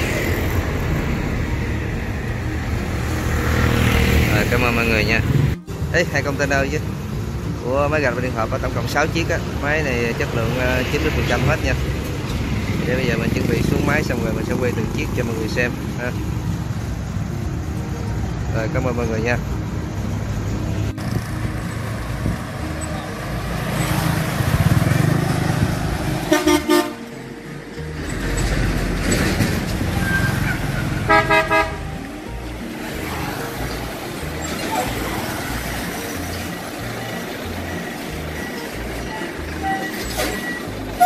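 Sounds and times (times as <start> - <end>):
passing road traffic: 0.0 - 41.0
truck engines: 0.0 - 41.0
vehicle horns honking: 26.1 - 27.3, 29.9 - 32.2, 39.2 - 41.0.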